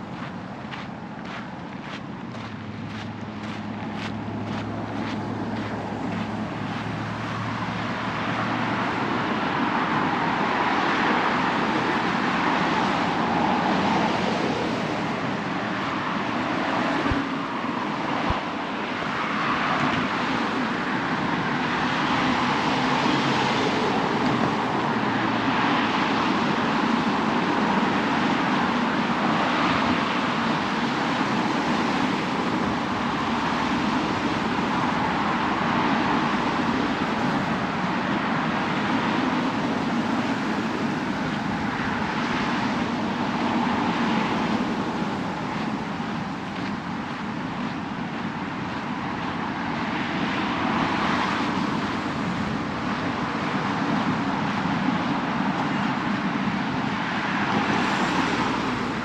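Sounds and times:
road traffic noise: 0.0 - 59.0.

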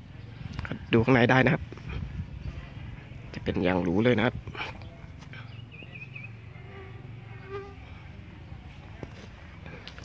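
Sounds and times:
low hum: 4.4 - 9.8
short buzz: 6.3 - 8.2.

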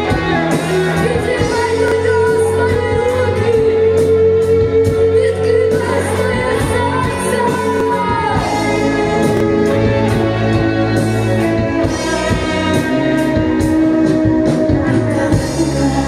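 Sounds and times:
bass guitar: 0.0 - 16.0
drums: 0.0 - 16.0
electric guitar: 0.0 - 16.0
woman singing: 0.0 - 16.0.

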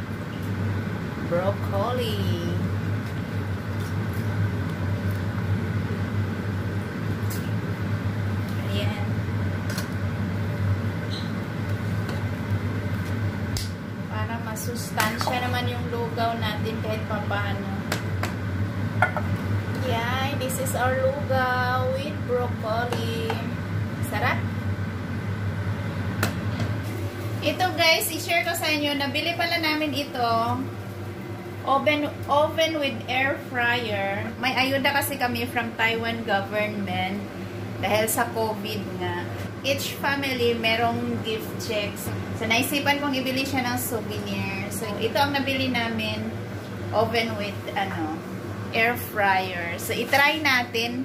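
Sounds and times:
low mechanical hum: 0.0 - 51.0.

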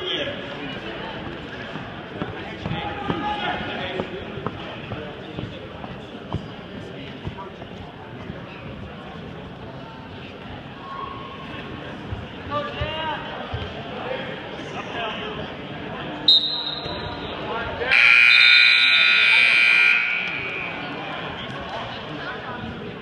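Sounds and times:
crowd murmur: 0.0 - 23.0
scoreboard buzzer: 17.9 - 20.8.

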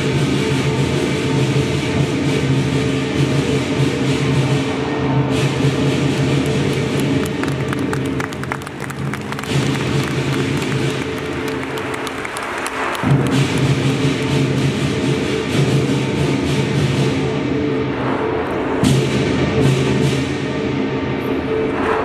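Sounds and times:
large drum: 0.0 - 21.2
cymbals clashing: 9.3 - 22.0.

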